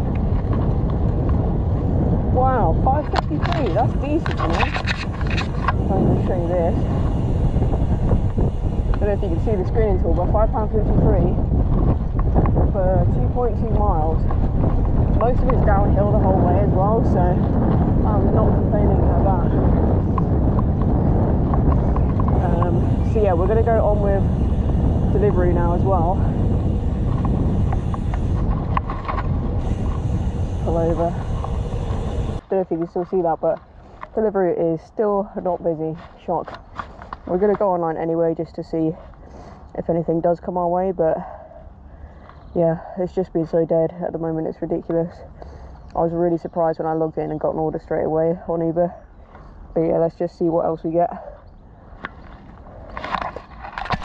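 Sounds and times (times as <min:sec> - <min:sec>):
bicycle tyres rolling: 0:00.0 - 0:32.6, 0:52.1 - 0:54.0
wind buffeting microphone: 0:00.0 - 0:54.0.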